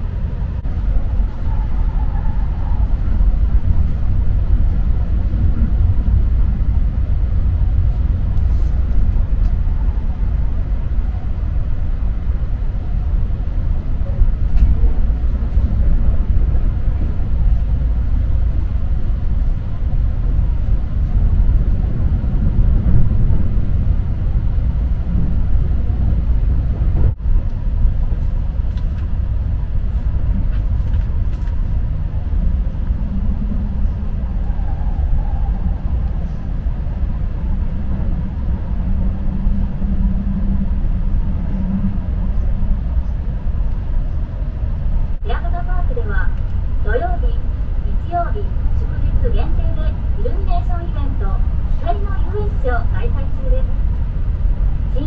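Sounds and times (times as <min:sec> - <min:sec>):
train wheels rumbling on rail: 0:00.0 - 0:55.0
people talking: 0:45.2 - 0:53.8.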